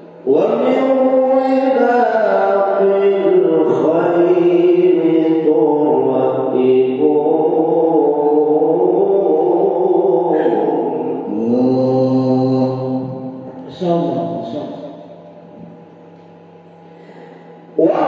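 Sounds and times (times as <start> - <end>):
man chanting melodically: 0.1 - 15.2, 17.7 - 18.0.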